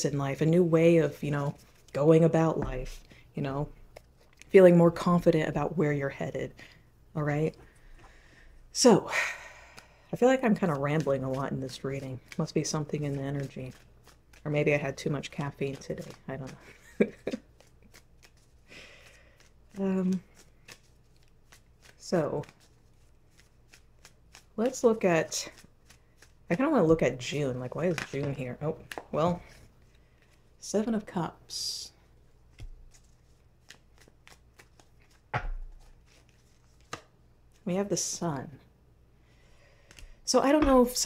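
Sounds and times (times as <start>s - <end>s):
cards being shuffled: 9.8s - 30.5s, 32.3s - 37.7s, 39.8s - 41.0s.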